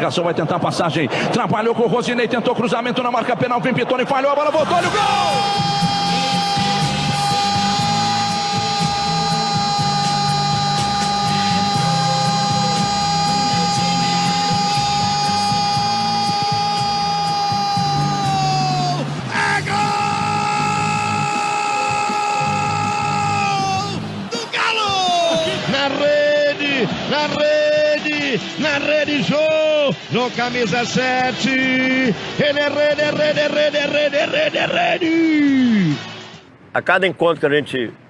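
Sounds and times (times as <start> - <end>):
commentator shouting goal: 0.0 - 34.2.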